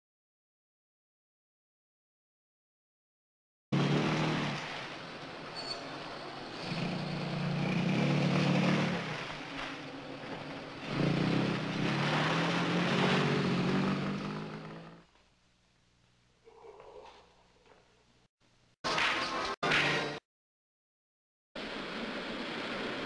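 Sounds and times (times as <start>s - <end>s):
sports car engine accelerating: 6.5s - 15.0s.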